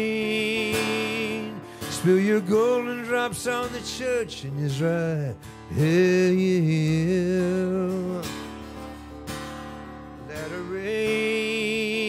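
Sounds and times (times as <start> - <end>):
acoustic guitar strummed: 0.0 - 12.0.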